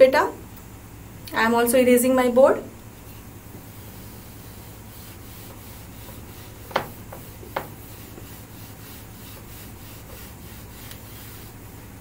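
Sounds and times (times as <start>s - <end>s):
eraser wiping a board: 3.0s - 11.6s.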